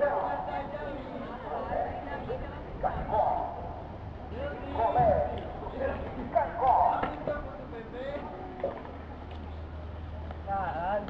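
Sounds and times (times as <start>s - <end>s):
people talking: 0.0s - 8.9s, 10.2s - 11.0s.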